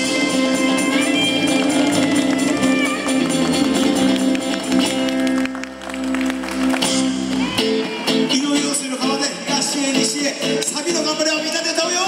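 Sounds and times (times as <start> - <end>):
saxophone: 0.0 - 6.6
electric bass: 0.0 - 10.8
congas: 0.0 - 11.0
acoustic guitar: 0.0 - 12.0.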